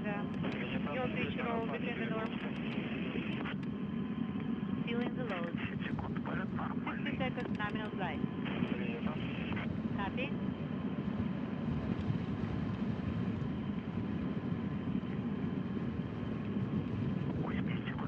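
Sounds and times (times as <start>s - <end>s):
distant rocket engine rumble: 0.0s - 18.0s.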